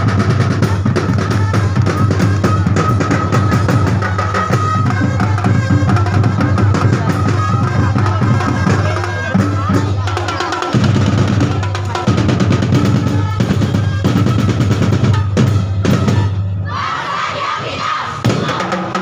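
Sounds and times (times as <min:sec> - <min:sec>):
loud drum-driven music: 0:00.0 - 0:16.6, 0:18.1 - 0:19.0.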